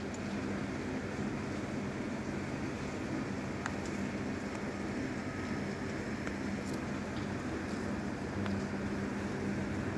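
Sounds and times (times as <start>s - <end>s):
low mechanical hum: 0.0s - 9.9s
steady rain hiss: 0.0s - 9.9s.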